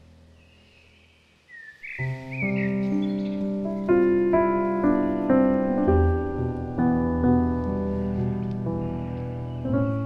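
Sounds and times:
faint forest ambience: 0.0s - 10.0s
songbird chirping: 0.0s - 10.0s
soft piano chord: 2.0s - 10.0s.

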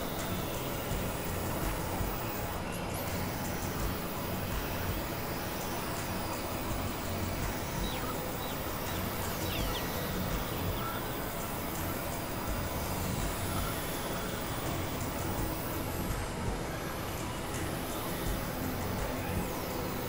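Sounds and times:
drone music rumble and hiss: 0.0s - 20.0s.

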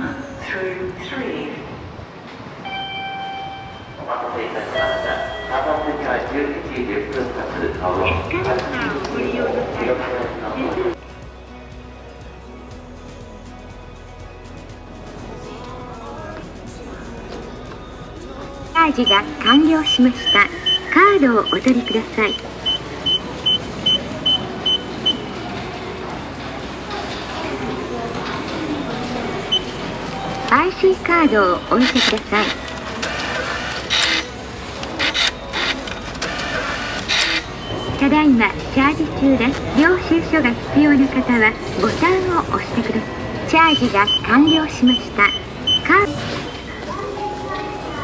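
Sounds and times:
station background hum: 0.0s - 11.0s, 16.9s - 48.0s
train running: 0.0s - 12.9s, 16.7s - 48.0s
card machine short high beeps: 19.0s - 25.3s, 43.6s - 46.8s.

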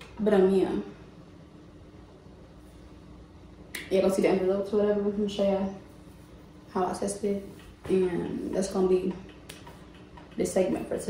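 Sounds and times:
woman speaking: 0.0s - 1.0s, 3.8s - 5.9s, 6.7s - 9.3s, 10.3s - 11.0s
faint steady hum: 0.0s - 11.0s.

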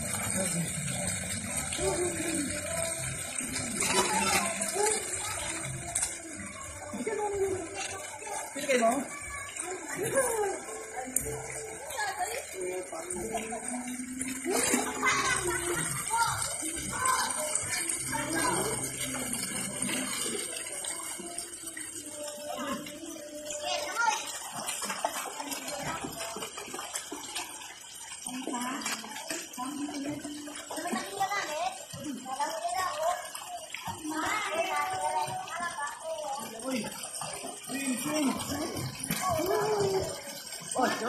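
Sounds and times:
indistinct talking: 0.0s - 41.0s
child's voice: 9.1s - 10.3s, 23.0s - 24.5s, 30.8s - 36.5s.

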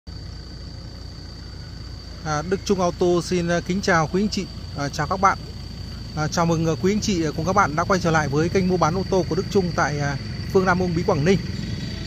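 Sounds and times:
engine idling rumble: 0.1s - 12.0s.

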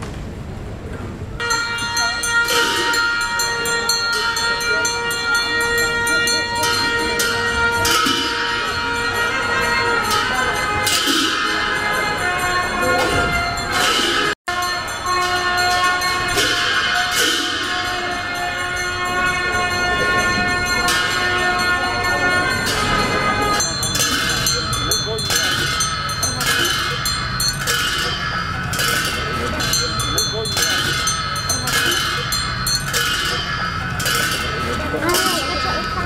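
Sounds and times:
voices: 0.6s - 36.0s
metal bells ringing: 1.4s - 36.0s
sharp bell strikes: 1.4s - 36.0s.

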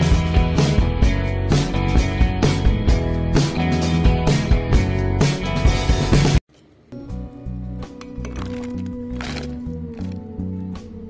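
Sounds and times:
background music with bass line: 0.0s - 6.4s.

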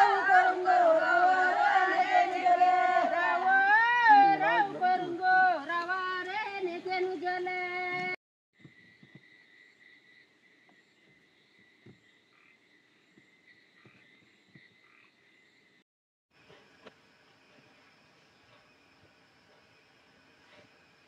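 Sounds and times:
voices singing long wavering notes: 0.0s - 6.2s.

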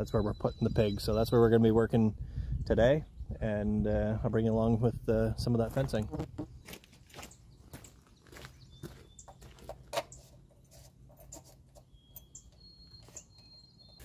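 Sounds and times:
faint high bird chirps: 0.0s - 1.6s, 6.6s - 14.0s.

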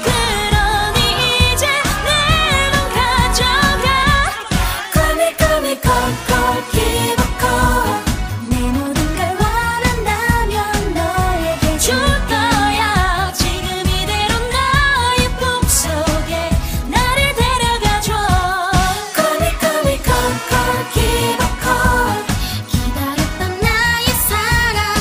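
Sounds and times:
person singing: 0.0s - 14.7s, 15.3s - 25.0s
pop backing track with beat: 0.0s - 25.0s.

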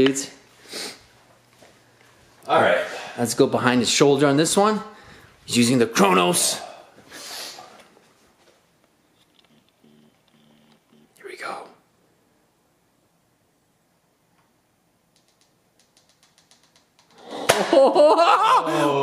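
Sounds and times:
person whispering: 11.0s - 11.8s.

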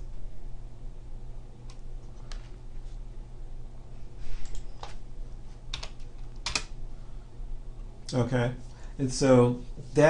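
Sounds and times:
low steady hum: 0.0s - 10.0s
keyboard keystrokes: 5.7s - 6.7s.

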